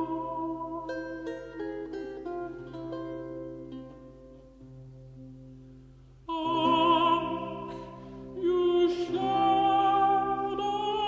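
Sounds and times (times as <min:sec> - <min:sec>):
person singing: 0:00.0 - 0:04.3, 0:06.2 - 0:11.0
lute plucked notes: 0:00.0 - 0:11.0.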